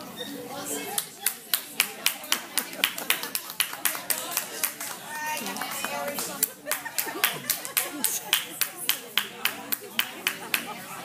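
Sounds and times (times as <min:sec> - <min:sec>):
background chatter: 0:00.0 - 0:11.0
hands clapping in rhythm: 0:00.9 - 0:10.7.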